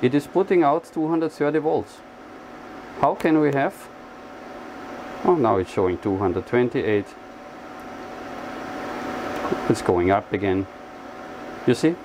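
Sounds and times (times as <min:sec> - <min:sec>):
cooling fan whirring: 0:00.0 - 0:12.0.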